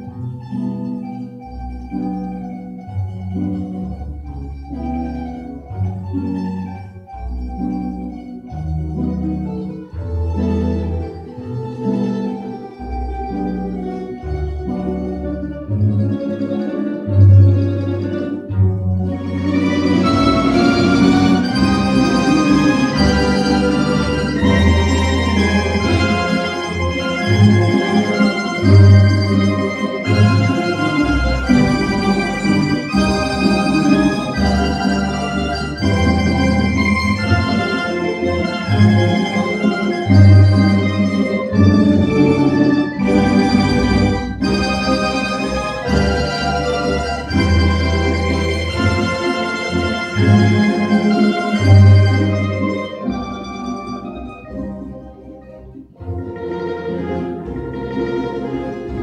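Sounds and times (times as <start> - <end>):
tremolo-picked string melody: 0.0 - 59.0.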